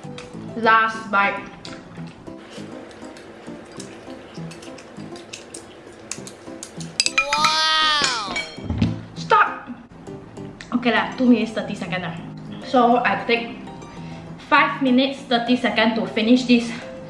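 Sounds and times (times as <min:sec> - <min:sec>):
quiet background music: 0:00.0 - 0:17.0
drawn-out voice-like cry: 0:07.2 - 0:08.4.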